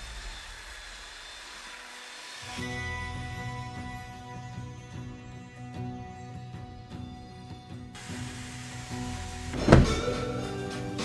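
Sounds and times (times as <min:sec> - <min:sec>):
background music: 0:02.5 - 0:11.0
knock on wooden roof: 0:09.6 - 0:10.2.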